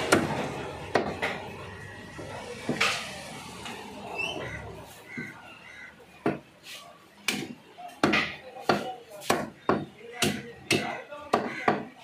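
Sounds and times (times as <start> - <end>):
cleaver chopping chicken: 7.2 - 11.9.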